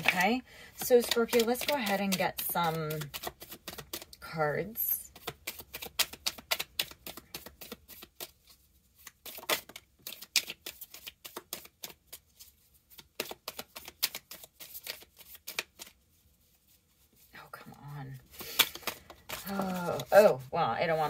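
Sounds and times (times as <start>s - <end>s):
cards being shuffled: 0.0s - 4.2s, 4.8s - 17.3s, 18.1s - 21.0s.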